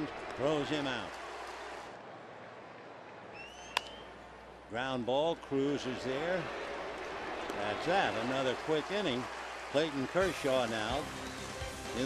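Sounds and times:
stadium crowd hubbub: 0.0 - 4.8, 5.4 - 12.0
baseball bat crack: 3.5 - 4.2.

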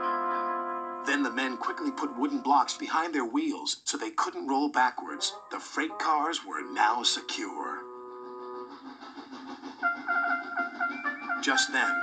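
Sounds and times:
light music with short repeated notes: 0.0 - 2.9, 5.0 - 12.0
held musical chord: 0.0 - 3.0, 5.0 - 8.7.

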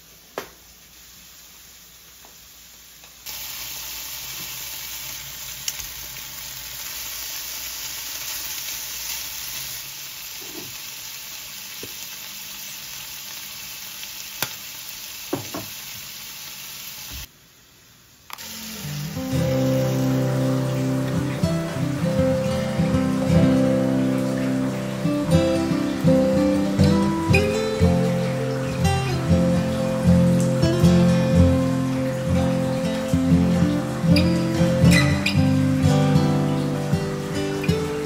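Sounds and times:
beef sizzling in frying pan: 0.6 - 17.3, 18.4 - 38.0
acoustic guitar music: 18.6 - 38.0.

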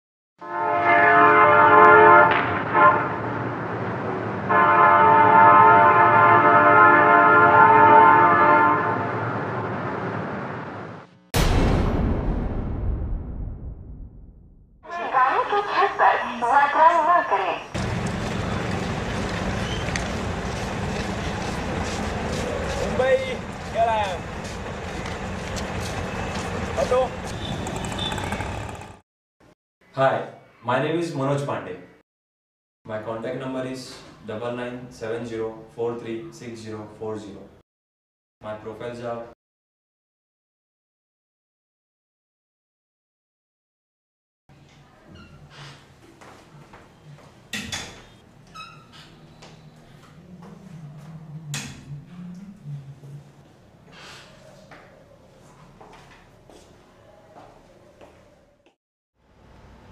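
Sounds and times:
loud horn chord: 0.4 - 3.5, 4.5 - 9.2
street noise: 0.7 - 11.3, 14.8 - 29.0, 44.6 - 59.9
low rumble: 11.4 - 14.8
auto-rickshaw engine rumble: 17.8 - 29.0.

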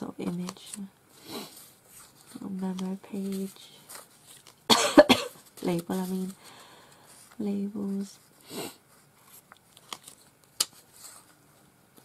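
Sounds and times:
paper and card rustling: 0.0 - 4.7, 5.3 - 8.3, 8.9 - 12.0.

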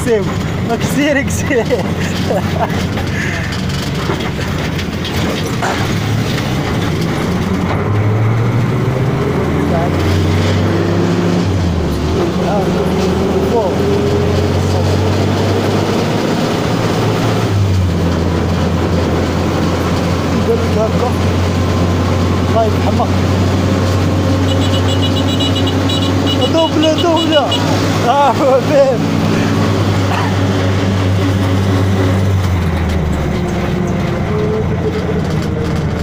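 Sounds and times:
motorcycle engine: 0.0 - 36.0
road and wind noise: 0.0 - 36.0.

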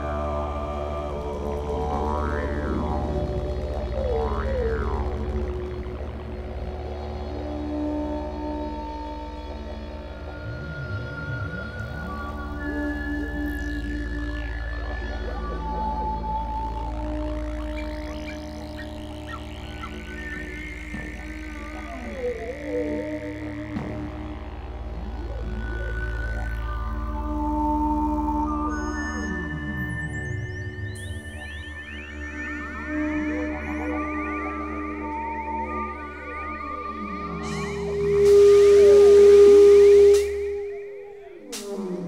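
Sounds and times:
wavering sliding pitches: 0.0 - 6.6, 10.2 - 24.1
didgeridoo drone: 0.0 - 42.0
sustained tones: 0.0 - 42.0.

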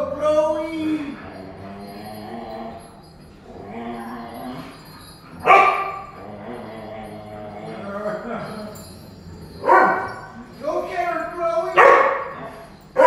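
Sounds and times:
dogs whining and grumbling: 0.0 - 13.0
dog barking sharply: 11.8 - 12.2.

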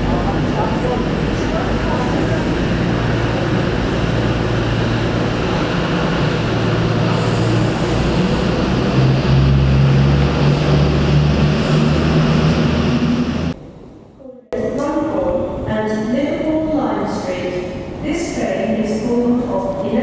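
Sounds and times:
rumbling track noise: 0.0 - 13.9
train engine hum: 0.0 - 20.0.

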